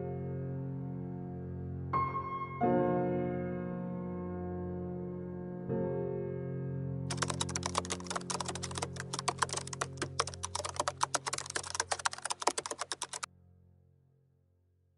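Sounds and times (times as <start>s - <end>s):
soft piano music: 0.0s - 13.2s
keyboard typing clicks: 7.1s - 13.3s.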